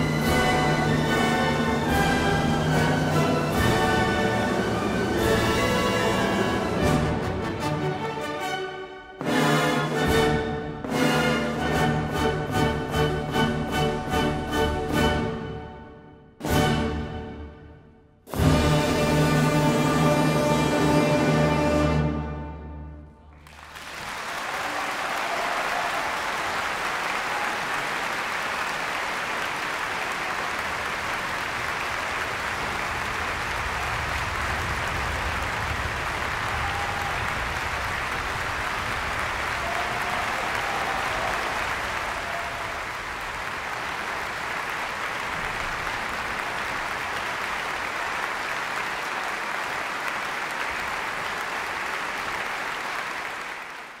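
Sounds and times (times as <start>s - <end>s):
audience applauding: 23.3s - 54.0s.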